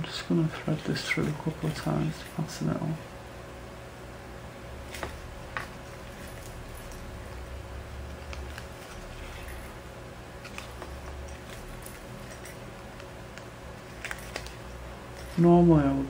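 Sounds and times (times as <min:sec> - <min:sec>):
low steady hum: 0:00.0 - 0:16.0
paper rustling: 0:08.1 - 0:09.8, 0:10.4 - 0:15.6.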